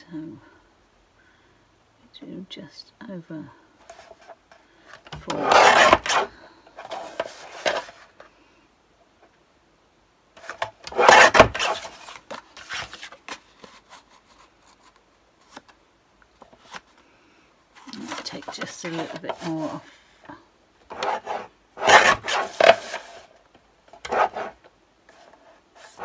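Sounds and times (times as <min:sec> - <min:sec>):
card sliding on trimmer: 0:05.2 - 0:06.3, 0:10.9 - 0:11.9, 0:20.9 - 0:23.1, 0:24.0 - 0:24.6
paper trimmer blade cutting: 0:05.3 - 0:06.3, 0:10.9 - 0:11.9, 0:20.9 - 0:22.9, 0:24.0 - 0:24.6.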